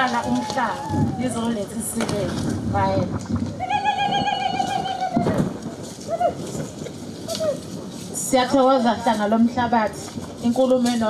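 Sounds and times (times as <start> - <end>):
woman ululating: 0.1 - 1.5, 3.6 - 6.4.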